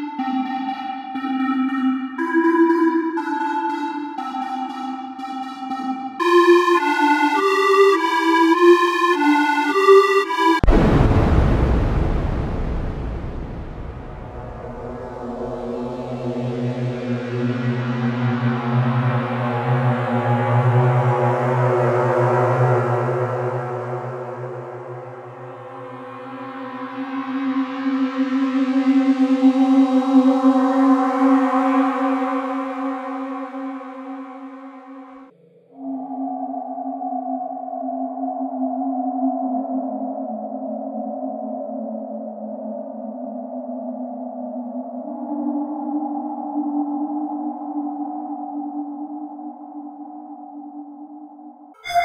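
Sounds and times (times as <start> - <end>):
synthetic string pad: 0.0 - 29.3, 51.8 - 52.0.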